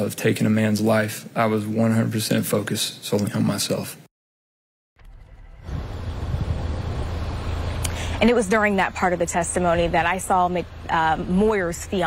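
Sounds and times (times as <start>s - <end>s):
low outdoor background rumble: 5.0s - 12.0s.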